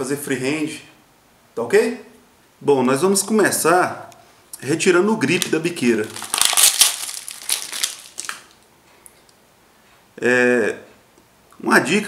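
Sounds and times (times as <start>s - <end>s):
paper pouch crinkling: 5.2s - 8.6s.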